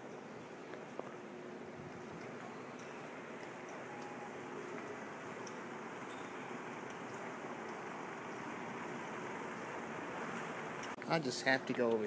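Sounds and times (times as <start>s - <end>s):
indoor mall background noise: 0.0s - 12.0s.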